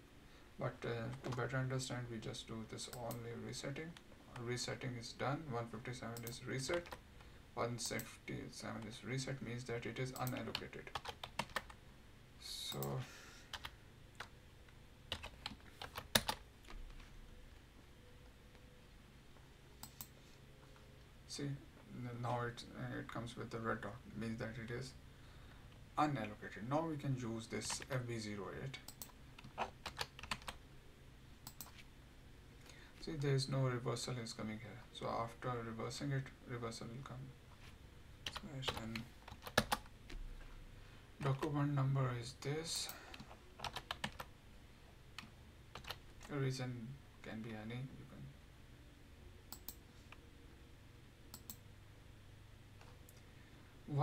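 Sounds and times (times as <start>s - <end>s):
computer keyboard keystrokes: 10.2s - 11.8s, 15.1s - 17.0s, 28.8s - 30.6s, 31.4s - 31.8s, 38.3s - 39.9s, 43.1s - 44.3s, 45.2s - 46.3s.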